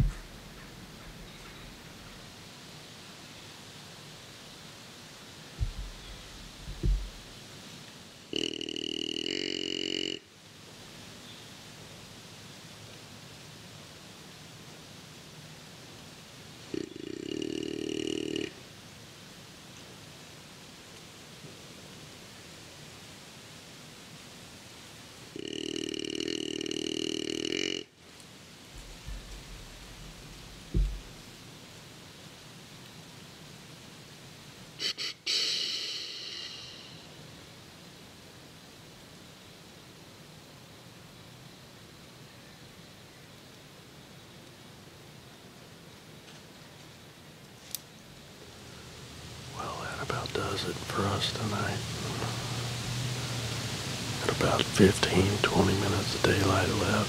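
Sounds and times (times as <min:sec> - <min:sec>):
short low thump: 0:00.0 - 0:01.3, 0:05.6 - 0:07.2, 0:28.8 - 0:31.3
deer grunt call: 0:08.3 - 0:10.3, 0:16.7 - 0:18.6, 0:25.3 - 0:27.9, 0:34.8 - 0:37.2.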